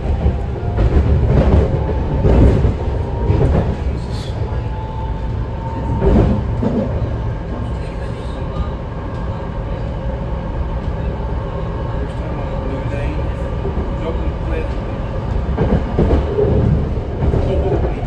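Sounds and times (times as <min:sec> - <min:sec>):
train car running rumble: 0:00.0 - 0:18.0.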